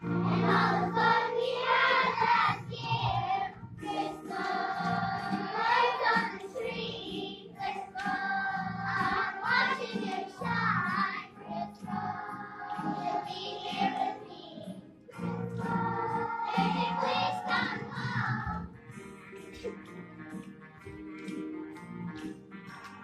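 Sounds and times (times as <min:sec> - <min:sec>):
children's choir singing: 0:00.0 - 0:19.9.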